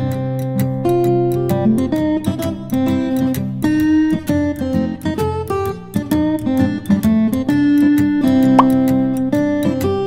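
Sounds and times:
acoustic guitar music: 0.0 - 10.0.

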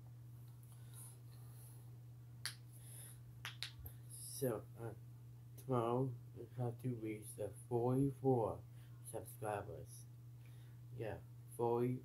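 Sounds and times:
faint low hum: 0.0 - 12.0
finger snap: 2.4 - 2.8, 3.4 - 4.0.

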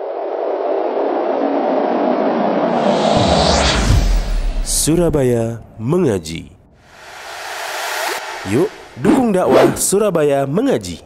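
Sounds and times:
hissing noise riser: 2.6 - 5.2, 6.8 - 9.9.

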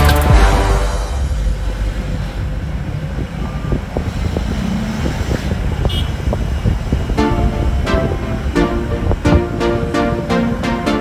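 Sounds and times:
vehicle road and engine rumble: 1.1 - 10.6.

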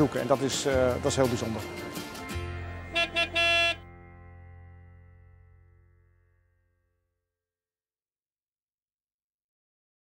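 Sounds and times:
background music: 0.0 - 6.6
vehicle horn toots: 2.9 - 3.9.

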